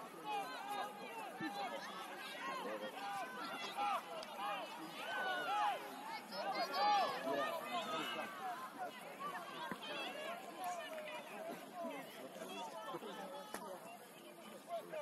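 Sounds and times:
many overlapping voices: 0.0 - 15.0.

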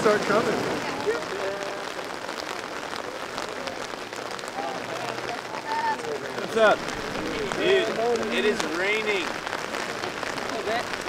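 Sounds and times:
faint voices talking: 0.0 - 11.0
rain on umbrellas: 0.0 - 11.0.

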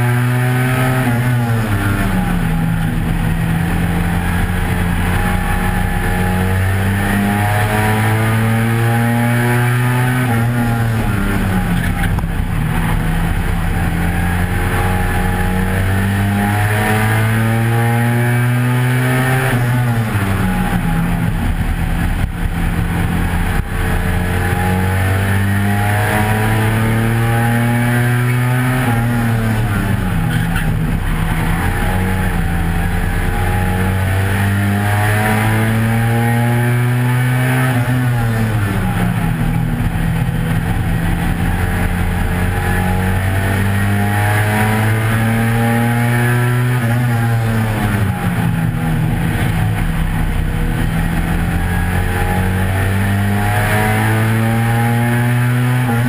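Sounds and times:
race car engine racing: 0.0 - 56.0.

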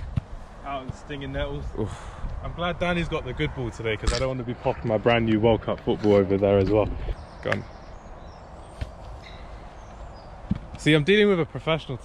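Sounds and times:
outdoor ambience: 0.0 - 12.0
faint bird chirps: 7.0 - 10.5.

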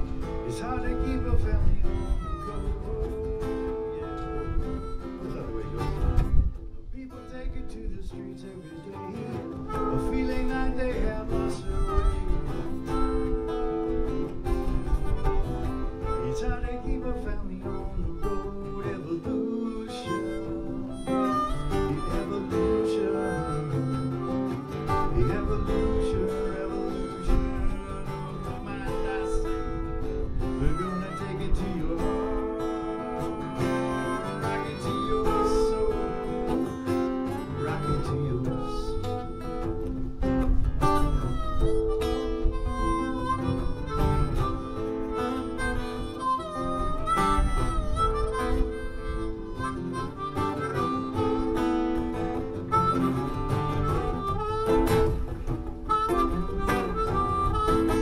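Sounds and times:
acoustic guitar strumming: 0.0 - 58.0
harmonica melody: 0.0 - 58.0.

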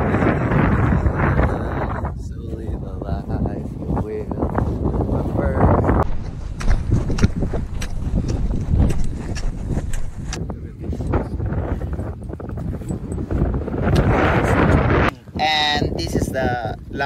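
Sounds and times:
wind buffeting microphone: 0.0 - 17.0
footsteps crunching on gravel: 3.2 - 10.5.

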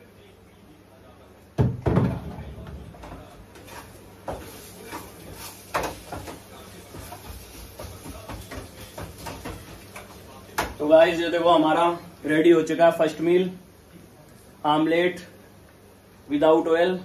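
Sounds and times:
loud knock with deep thud: 1.6 - 2.4.

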